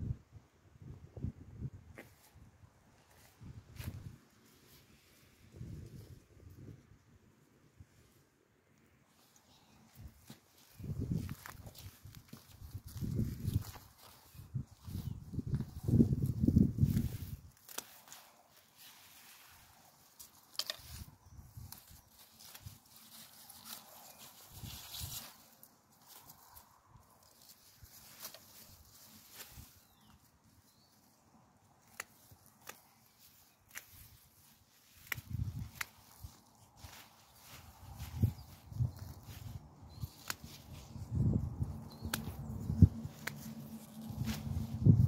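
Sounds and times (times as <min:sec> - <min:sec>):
rustling of plants: 0:01.9 - 0:06.9, 0:08.9 - 0:45.0
soft clicks: 0:42.0 - 0:42.4.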